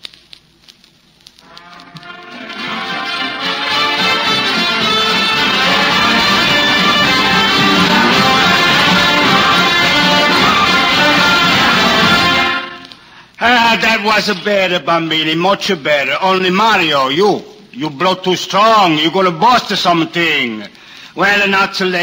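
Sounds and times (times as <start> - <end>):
horn: 1.4 - 13.0
small band playing a tune: 1.5 - 12.9.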